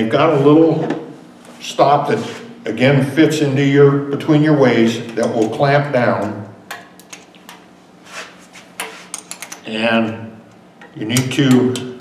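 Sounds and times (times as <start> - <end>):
metal parts clicking: 9.1 - 9.7.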